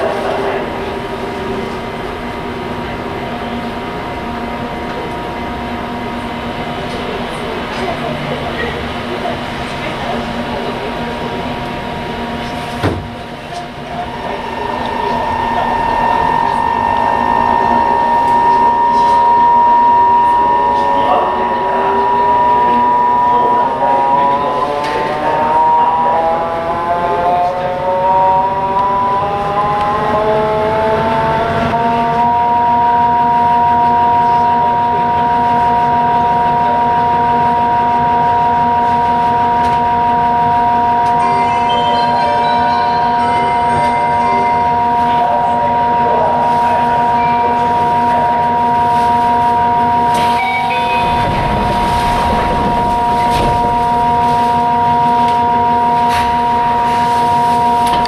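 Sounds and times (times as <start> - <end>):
deep rumble: 0.0 - 25.0, 50.8 - 56.6
train running noise: 0.0 - 58.0
train traction motor whining: 0.0 - 58.0.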